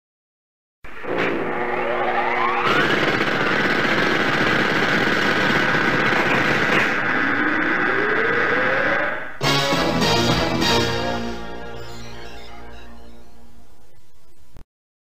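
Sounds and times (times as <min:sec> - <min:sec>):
tone sweeping upward: 0:07.2 - 0:14.6
high steady tone: 0:10.0 - 0:14.6.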